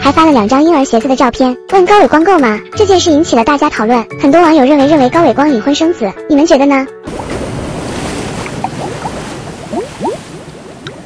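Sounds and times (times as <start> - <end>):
rising bubble blips: 7.1 - 7.8, 8.4 - 11.0
rush of water noise: 7.1 - 11.0.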